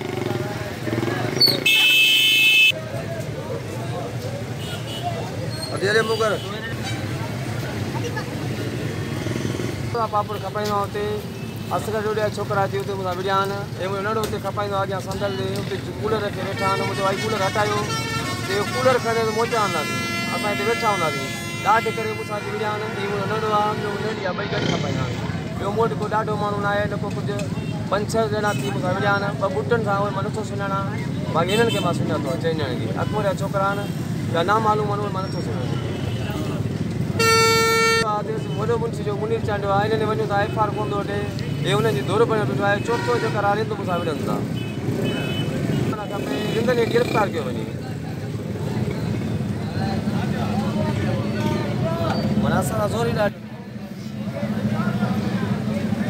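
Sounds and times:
street noise: 0:00.0 - 0:56.0
vehicle horn steady note: 0:01.6 - 0:02.7, 0:17.8 - 0:23.2, 0:37.2 - 0:38.0.

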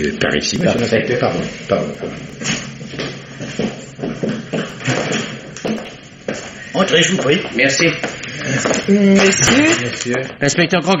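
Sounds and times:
footsteps of several people: 0:01.4 - 0:09.0.

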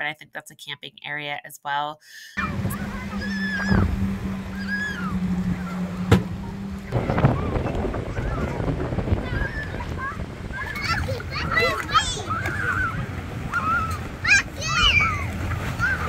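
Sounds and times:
distant children calling and shrieking: 0:02.4 - 0:16.0
low hum: 0:02.4 - 0:16.0
rumble of wind and water: 0:02.4 - 0:16.0.

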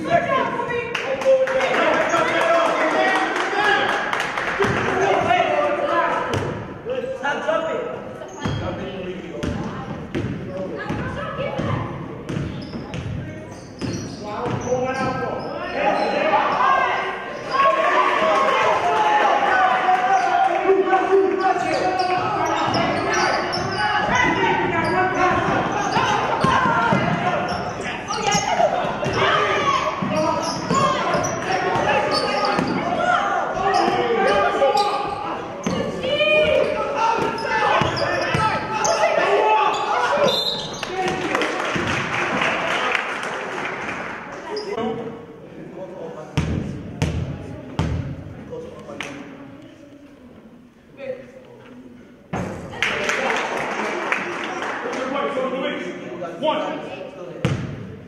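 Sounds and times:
crowd noise: 0:00.0 - 0:58.0
voices shouting and talking: 0:00.0 - 0:58.0
basketball bouncing on court: 0:09.4 - 0:15.2, 0:46.4 - 0:48.1, 0:57.4 - 0:57.8.

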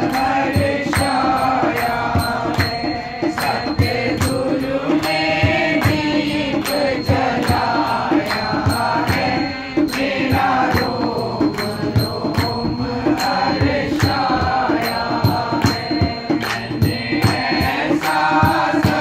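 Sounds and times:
group singing devotional song: 0:00.0 - 0:19.0
hand drum beat: 0:00.0 - 0:19.0
hand-clapping: 0:00.0 - 0:19.0.

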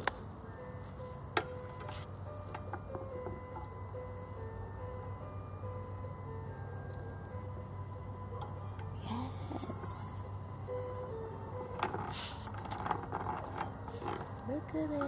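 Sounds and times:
steady low hum: 0:00.0 - 0:15.0
rustling noise: 0:11.7 - 0:14.5.

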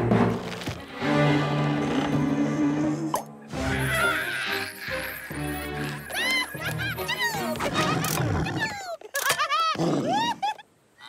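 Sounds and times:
cartoon character cries and yelps: 0:03.5 - 0:10.6.

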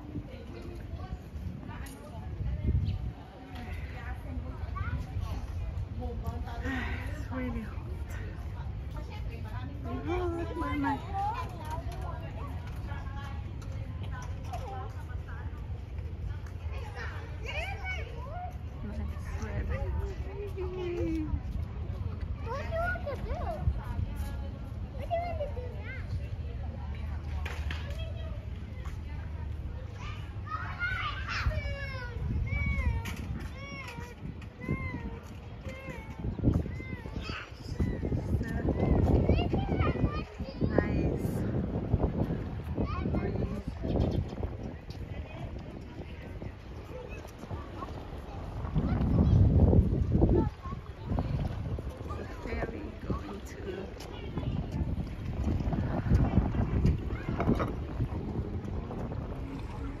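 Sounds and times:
faint voices: 0:00.0 - 1:00.0
wind buffeting microphone: 0:00.0 - 1:00.0
children calling and squealing: 0:27.7 - 1:00.0.

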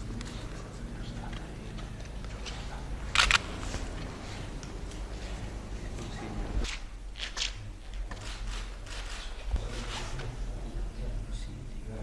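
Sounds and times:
camera shutter clicks: 0:03.1 - 0:03.5.

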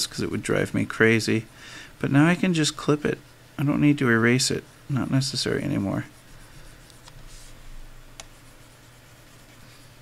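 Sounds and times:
low steady hum: 0:00.0 - 0:10.0
stylus scratching on tablet: 0:04.5 - 0:10.0.

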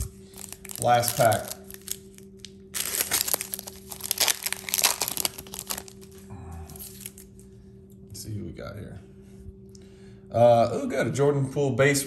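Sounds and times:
wrapper crackling and rustling: 0:00.0 - 0:06.2, 0:06.8 - 0:07.3.

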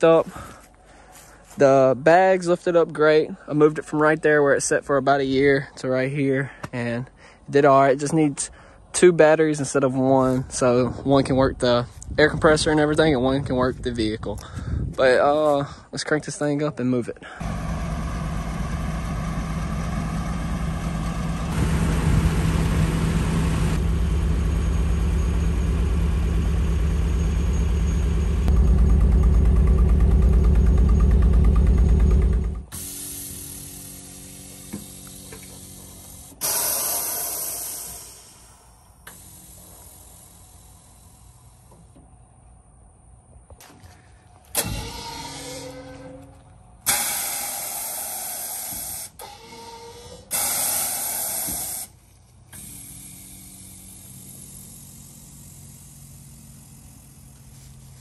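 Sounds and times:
pickup truck engine running: 0:17.4 - 0:36.4, 0:52.0 - 0:58.0
air suspension hissing bursts: 0:32.7 - 0:41.9, 0:44.4 - 0:58.0.

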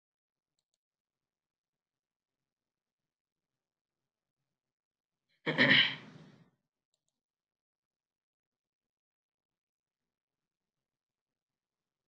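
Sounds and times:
man coughing: 0:05.5 - 0:06.1.

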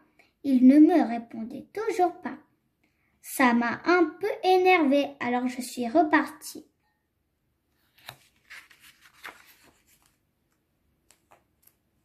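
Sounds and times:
paper page rustling: 0:07.7 - 0:12.0.

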